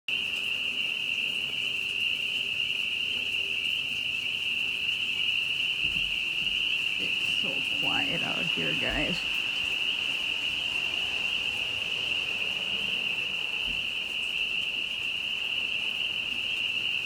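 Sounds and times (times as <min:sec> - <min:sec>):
chorus of small animals calling: 0:00.1 - 0:17.0.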